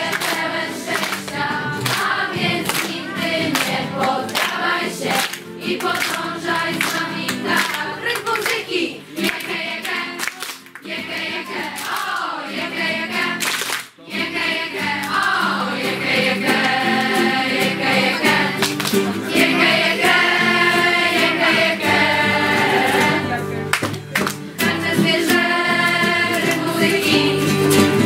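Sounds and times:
young voices singing in chorus: 0:00.0 - 0:10.2, 0:10.8 - 0:13.4, 0:14.0 - 0:18.6, 0:19.2 - 0:23.3, 0:24.6 - 0:28.0.

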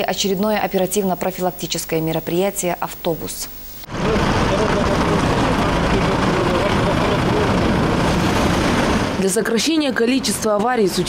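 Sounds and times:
street noise: 0:00.0 - 0:11.0
minibus engine idling: 0:03.9 - 0:08.8.

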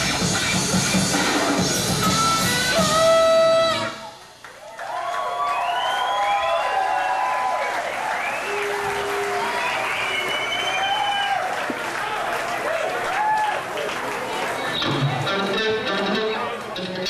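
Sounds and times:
audience cheering and shouting: 0:02.7 - 0:15.2
audience clapping: 0:04.0 - 0:15.3.

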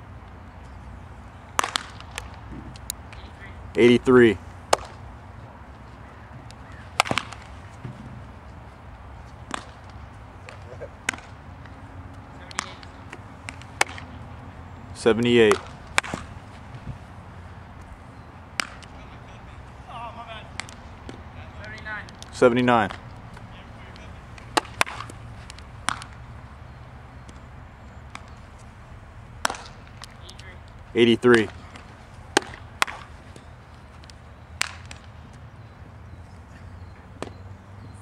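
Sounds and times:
baseball bat crack: 0:01.3 - 0:37.4.

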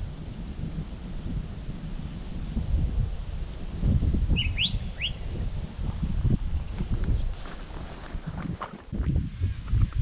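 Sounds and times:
bird chirping: 0:04.3 - 0:05.5.

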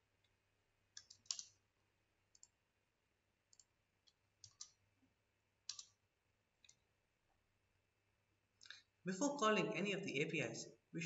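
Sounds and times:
computer keyboard and mouse clicks: 0:00.9 - 0:01.6, 0:02.3 - 0:02.6, 0:03.5 - 0:04.8, 0:05.7 - 0:06.0.

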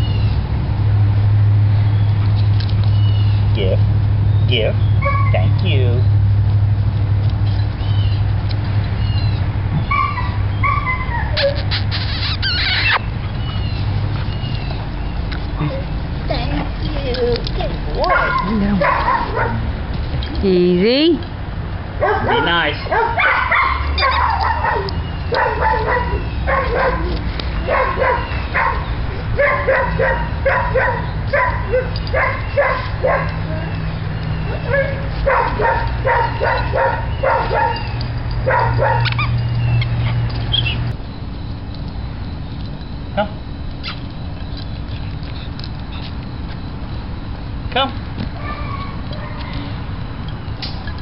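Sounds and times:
dog yapping: 0:05.0 - 0:05.5, 0:09.1 - 0:14.8, 0:18.0 - 0:19.7, 0:22.0 - 0:40.9, 0:48.4 - 0:49.8
puppy yipping and barking: 0:05.0 - 0:05.5, 0:09.0 - 0:14.8, 0:18.0 - 0:19.6, 0:22.0 - 0:41.0, 0:48.4 - 0:49.8.

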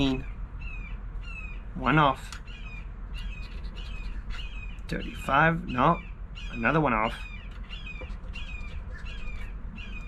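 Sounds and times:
birds squawking: 0:00.0 - 0:10.0.

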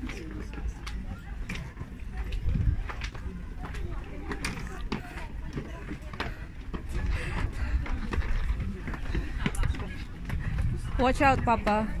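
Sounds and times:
crowd chatting: 0:00.0 - 0:12.0
wind rumble on microphone: 0:02.1 - 0:04.0, 0:06.8 - 0:12.0.

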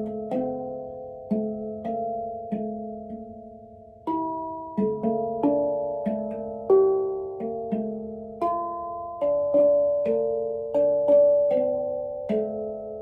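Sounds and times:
handpan notes ringing: 0:00.0 - 0:13.0.

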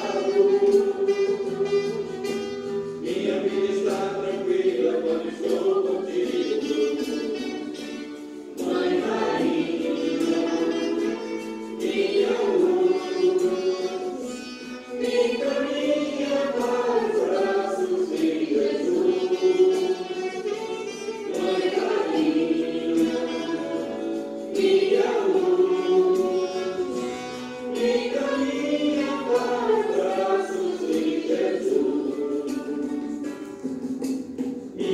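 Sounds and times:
choir singing long notes: 0:00.0 - 0:34.9.

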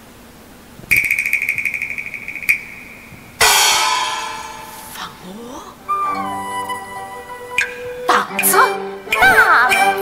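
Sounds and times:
fast high-pitched percussion roll: 0:00.9 - 0:05.0.

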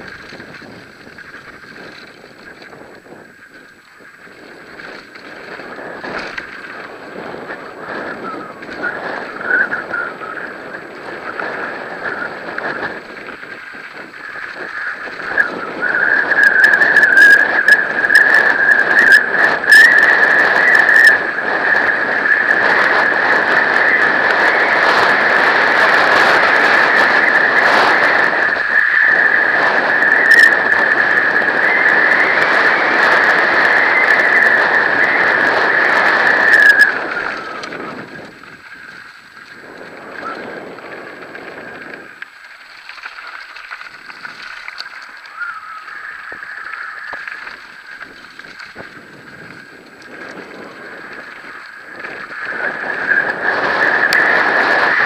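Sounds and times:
mountain bike rattling on gravel: 0:00.0 - 0:55.0
wind noise: 0:00.0 - 0:55.0
loud high squeal: 0:14.5 - 0:38.1, 0:45.2 - 0:48.4, 0:51.2 - 0:55.0.

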